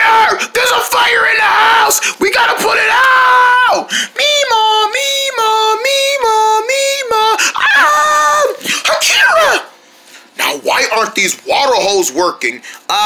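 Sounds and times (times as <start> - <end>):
high-pitched voice screaming: 0.0 - 9.7.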